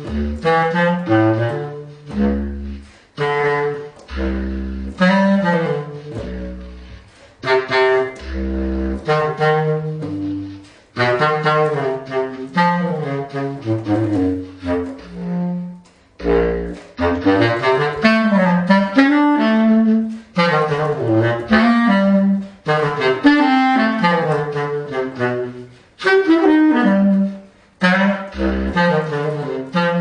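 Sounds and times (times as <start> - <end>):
bass clarinet jazz phrases: 0.0 - 30.0.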